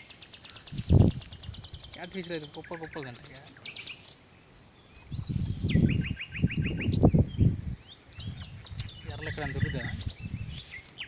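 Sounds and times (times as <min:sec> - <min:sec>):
bird chirps: 0:00.0 - 0:11.0.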